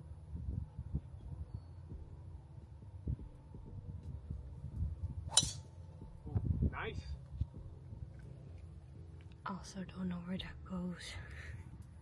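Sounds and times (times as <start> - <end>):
low steady rumble: 0.0 - 12.0
golf club striking ball: 5.3 - 5.7.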